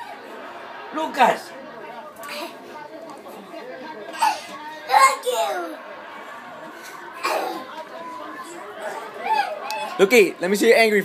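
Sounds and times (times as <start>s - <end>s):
low voices and chatter: 0.0s - 11.0s.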